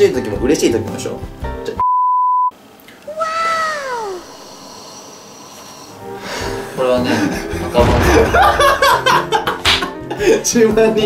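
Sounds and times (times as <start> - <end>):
quiet background music: 0.0 - 1.8, 4.7 - 11.0
censor bleep tone: 1.8 - 2.5
comic meow sound effect: 3.1 - 4.4.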